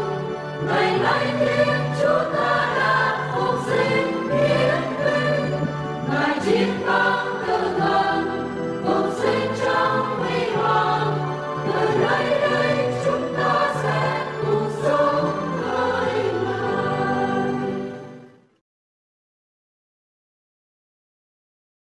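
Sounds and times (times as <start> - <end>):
choir singing a hymn: 0.0 - 18.3.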